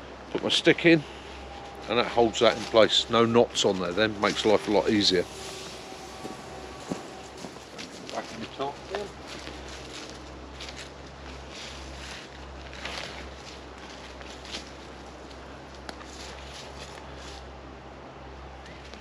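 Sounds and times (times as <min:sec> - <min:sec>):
steady low rumble: 0:00.0 - 0:19.0
footsteps in dry leaves: 0:00.4 - 0:17.6.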